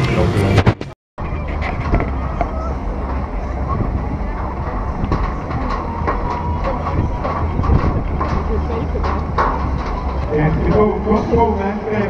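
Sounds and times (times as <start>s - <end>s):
crowd hubbub: 0.0s - 12.0s
steady low rumble: 0.0s - 12.0s.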